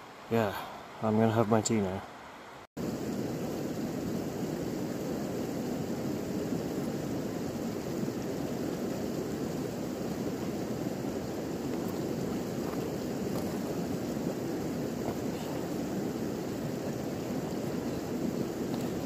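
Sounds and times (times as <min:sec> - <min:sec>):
steady outdoor rushing noise: 0:00.2 - 0:19.0.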